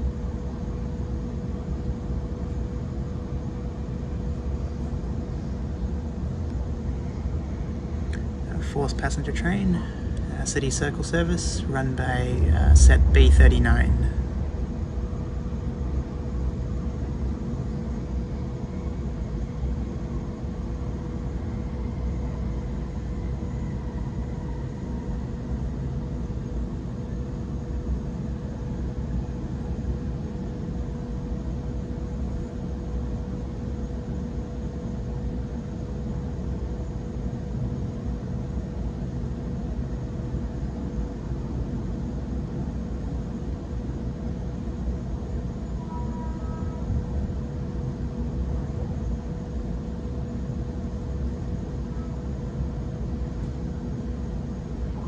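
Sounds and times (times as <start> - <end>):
constant hum: 0.0 - 55.0
brief higher tone: 45.8 - 46.8.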